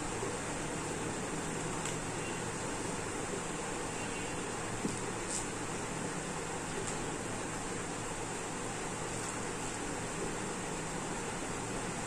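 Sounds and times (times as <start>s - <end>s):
fan hiss: 0.0s - 12.0s.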